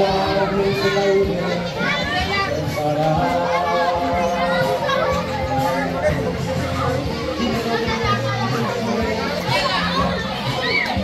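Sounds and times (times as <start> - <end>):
children chattering and calling out: 0.0 - 11.0
music with steady bass line: 0.0 - 11.0.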